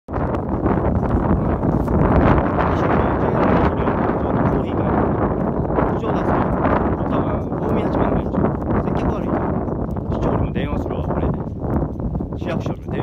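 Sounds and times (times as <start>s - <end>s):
wind buffeting microphone: 0.1s - 13.0s.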